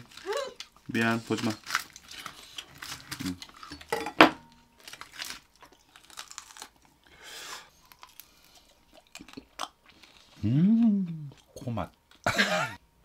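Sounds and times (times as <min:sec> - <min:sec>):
foil crinkling: 0:00.0 - 0:03.8, 0:04.8 - 0:06.9
chewing crunchy food: 0:00.0 - 0:03.9, 0:04.8 - 0:12.3
crackling skin crunching: 0:00.0 - 0:10.4.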